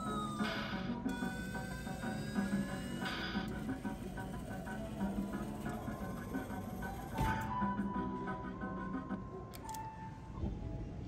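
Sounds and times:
electronic arcade game music: 0.0 - 9.5.

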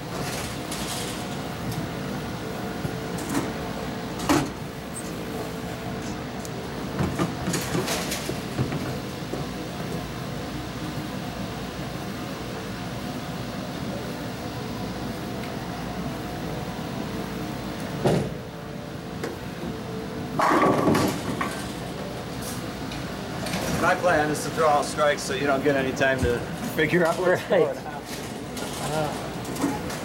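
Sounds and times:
machinery hum: 0.0 - 30.0
bowling pins clattering: 20.4 - 21.7.

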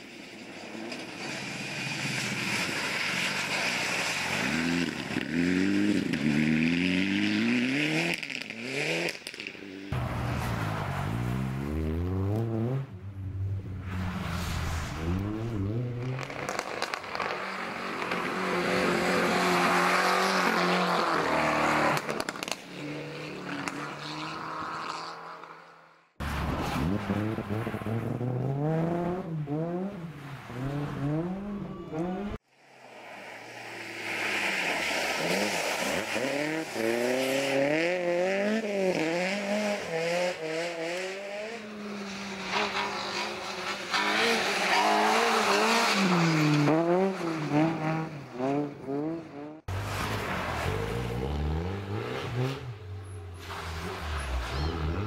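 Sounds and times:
rally car engines revving: 0.2 - 32.4, 33.0 - 55.0.

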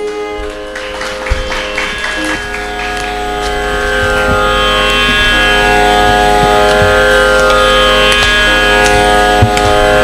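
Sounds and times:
drone: 0.0 - 10.0
hand drum strokes: 0.0 - 10.0
held sliding note: 0.0 - 10.0.

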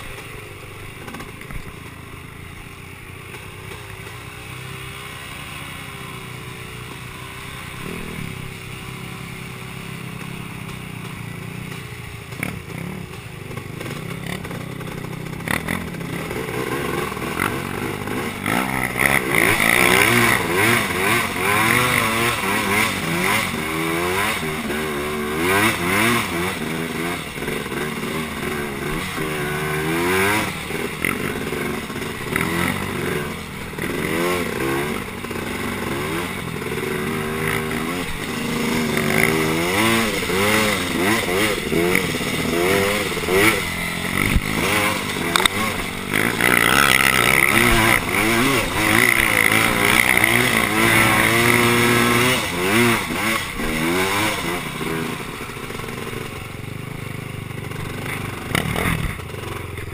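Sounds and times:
atv engine revving: 0.0 - 59.9.

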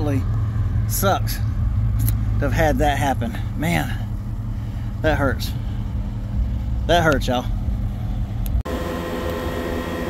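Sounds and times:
low outdoor rumble: 0.0 - 10.0
steady mechanical hum: 0.0 - 10.0.

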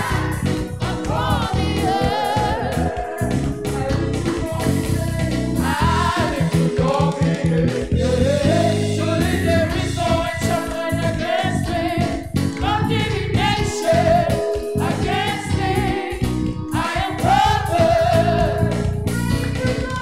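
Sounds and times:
electric keyboard: 0.0 - 20.0
group singing gospel in harmony: 0.0 - 20.0.

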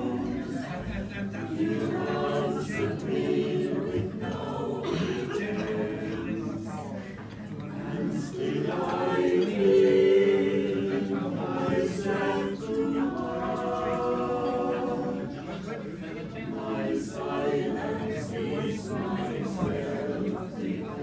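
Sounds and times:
choir singing a cappella: 0.0 - 21.0.

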